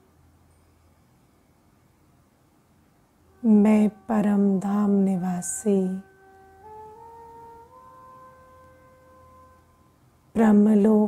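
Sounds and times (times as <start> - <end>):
soft meditation music: 0.0 - 11.0.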